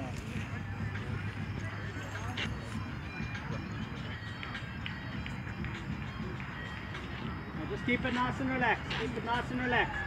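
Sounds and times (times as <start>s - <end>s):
faint background music: 0.0s - 10.0s.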